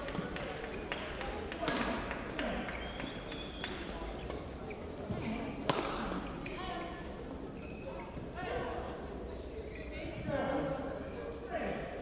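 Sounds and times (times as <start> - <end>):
voices: 0.0 - 12.0
racket striking shuttlecock: 5.6 - 6.2.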